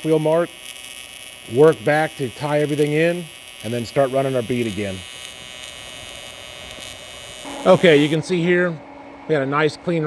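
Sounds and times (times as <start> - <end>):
welding arc buzzing: 0.0 - 8.5.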